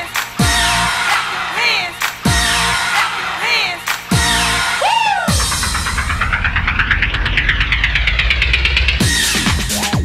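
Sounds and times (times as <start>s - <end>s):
low bass: 5.3s - 10.0s.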